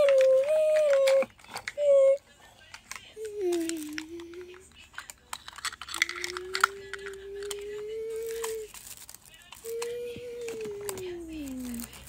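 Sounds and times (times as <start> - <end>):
plastic toy clicks and taps: 2.7 - 7.8.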